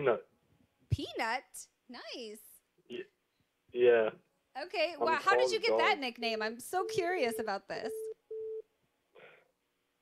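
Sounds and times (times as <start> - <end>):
telephone line beep: 6.8 - 8.6.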